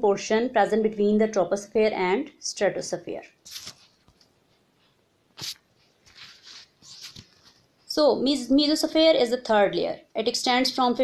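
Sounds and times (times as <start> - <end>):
sharp sniff: 5.4 - 5.6.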